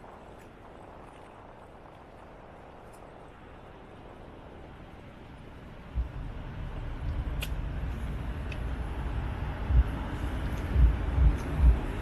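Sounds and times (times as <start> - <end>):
wind and road rumble: 0.0 - 12.0
sharp clicks: 7.1 - 8.7.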